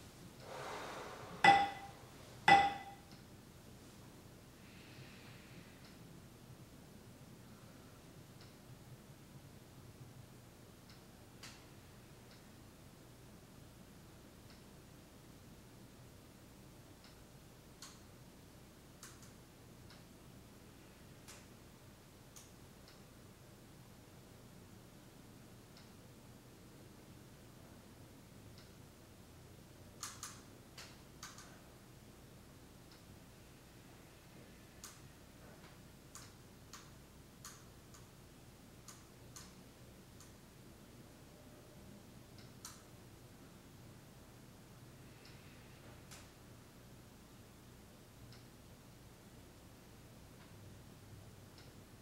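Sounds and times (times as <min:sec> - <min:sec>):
faint sharp ticking clicks: 0:08.3 - 0:08.7, 0:10.8 - 0:12.5, 0:14.4 - 0:14.8, 0:16.9 - 0:18.2, 0:18.9 - 0:20.2, 0:21.2 - 0:23.1, 0:28.5 - 0:28.9, 0:29.9 - 0:31.6, 0:32.8 - 0:33.1, 0:34.7 - 0:38.2, 0:38.8 - 0:40.5, 0:42.2 - 0:42.9, 0:45.0 - 0:46.4, 0:48.1 - 0:48.6, 0:51.4 - 0:51.9
faint sharp clicks: 0:30.0 - 0:31.5, 0:35.6 - 0:38.1.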